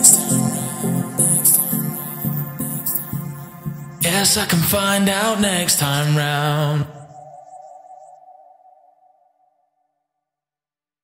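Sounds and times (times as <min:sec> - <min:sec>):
held electronic tone: 0:00.0 - 0:08.3.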